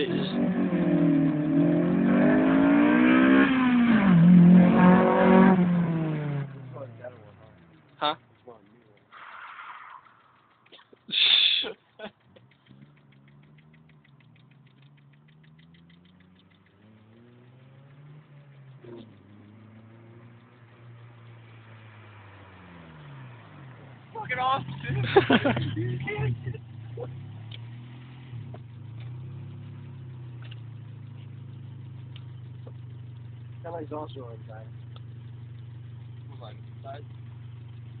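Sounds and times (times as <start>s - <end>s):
faint car engine running: 0.0s - 38.0s.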